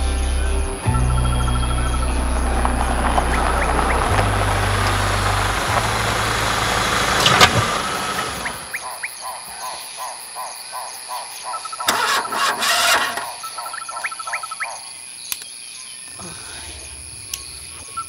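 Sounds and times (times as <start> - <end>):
car engine running: 0.0 - 8.8
crickets chirping: 0.0 - 18.0.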